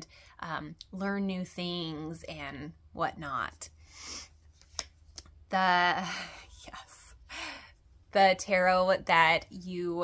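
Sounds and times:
woman breathing audibly: 7.2s - 7.9s.

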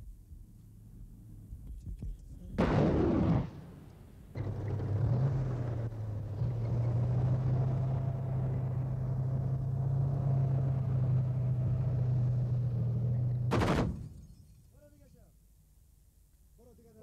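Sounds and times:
vehicle engine droning: 3.4s - 14.2s.

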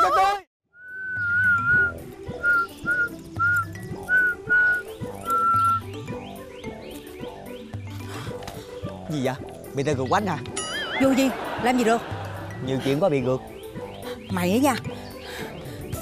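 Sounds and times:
person whistling a tune: 0.8s - 5.9s
background music with steady beat: 0.8s - 16.0s.

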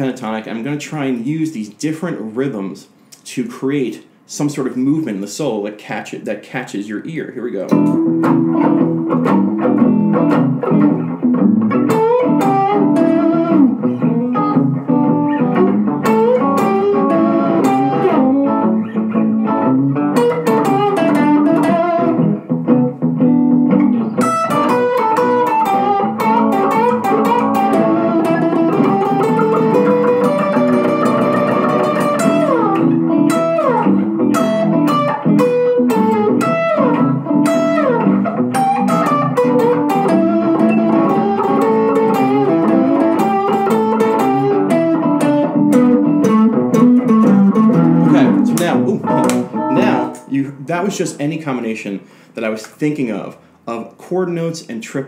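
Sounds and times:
electric guitar blues solo: 7.6s - 50.3s.

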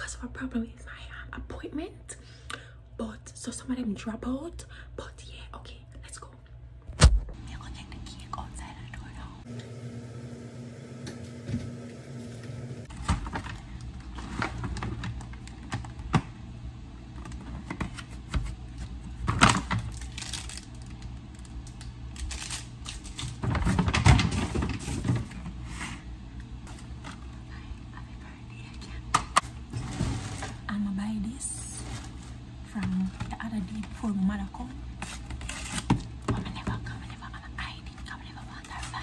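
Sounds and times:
plastic packaging crinkling: 19.4s - 23.9s.

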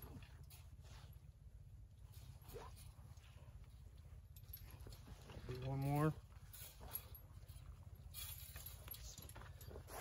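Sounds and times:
low steady rumble: 0.0s - 10.0s
metal clicks and clinks: 4.0s - 10.0s.

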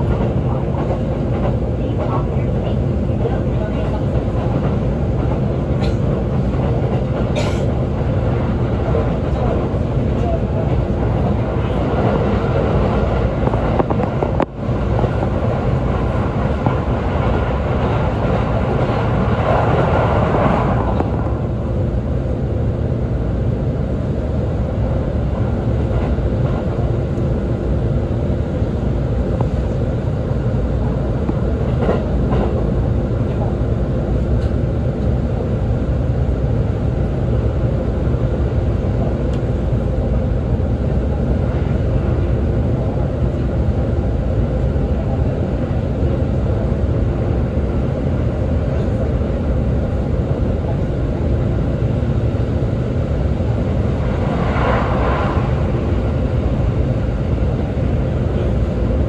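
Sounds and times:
train wheels rumbling on rail: 0.0s - 59.0s.

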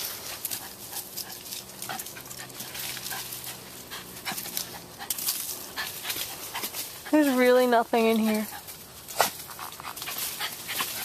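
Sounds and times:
dog scuffling in a bush: 0.0s - 11.0s.

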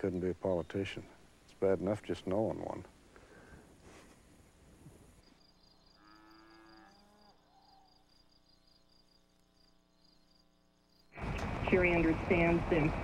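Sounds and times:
insects chirping: 0.0s - 11.3s.

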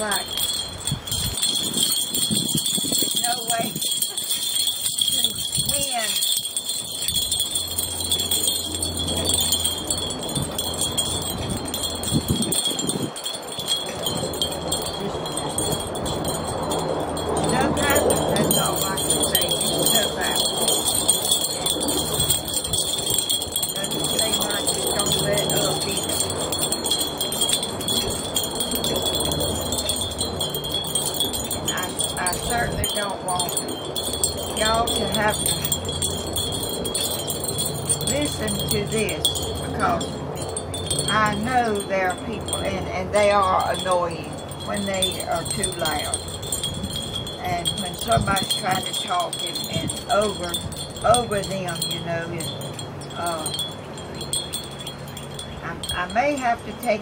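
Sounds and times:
wind chimes ringing: 0.0s - 57.0s.

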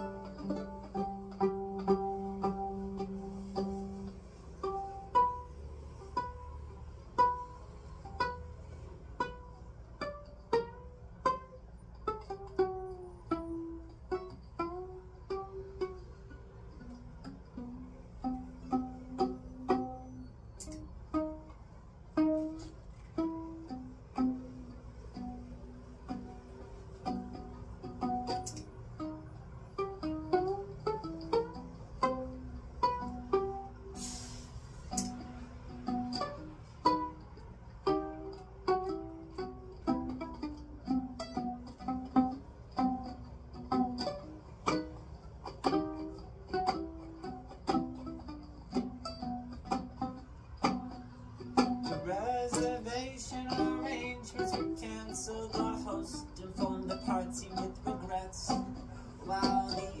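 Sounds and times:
violin plucked pizzicato: 0.0s - 60.0s.

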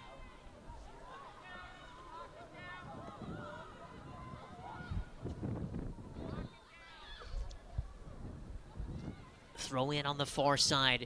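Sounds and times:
women shouting: 0.0s - 5.2s.

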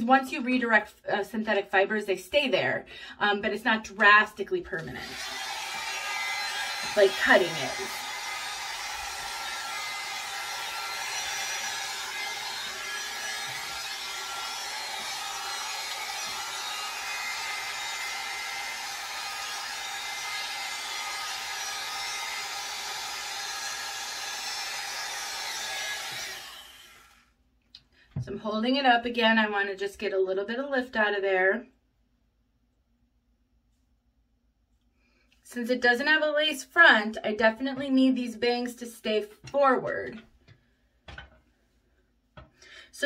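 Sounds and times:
hot air brush fan whirring: 4.7s - 27.4s.

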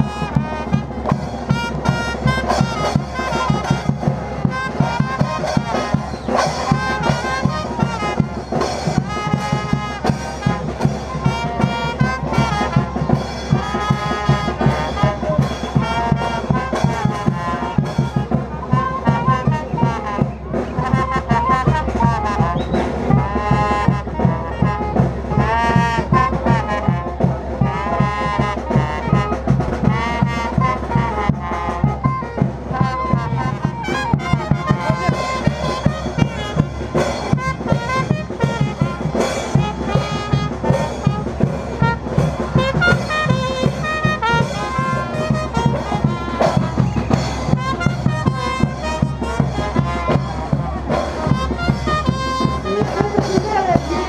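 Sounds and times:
bass drum beat: 0.0s - 54.0s
brass band playing dance tune: 0.0s - 54.0s.

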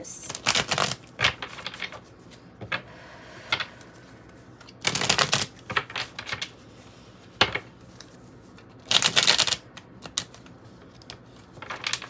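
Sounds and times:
cards being shuffled: 0.3s - 2.7s, 4.0s - 12.0s.

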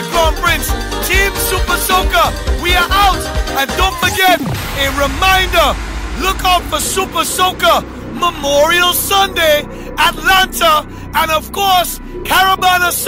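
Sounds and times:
steady low drone: 4.4s - 13.0s.

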